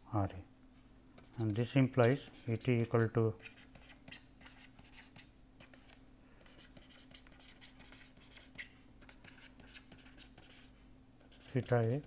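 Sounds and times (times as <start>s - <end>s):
low steady hum: 0.0s - 12.0s
stylus taps and scratches on tablet: 1.2s - 12.0s.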